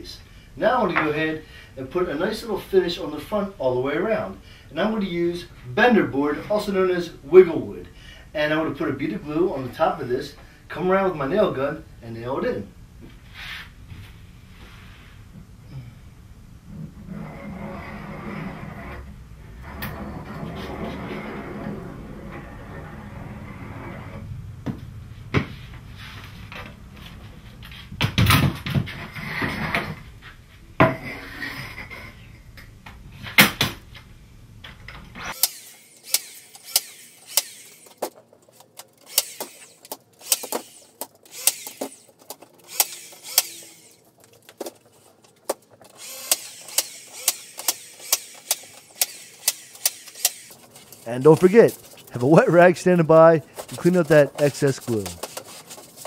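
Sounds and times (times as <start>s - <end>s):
nail gun firing: 35.3s - 38.1s, 38.8s - 44.0s, 46.0s - 50.6s.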